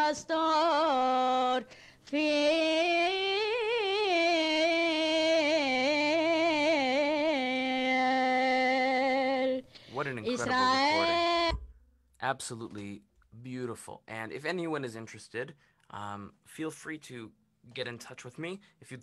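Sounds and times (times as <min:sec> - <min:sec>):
woman singing unaccompanied: 0:00.0 - 0:09.7, 0:10.3 - 0:11.7.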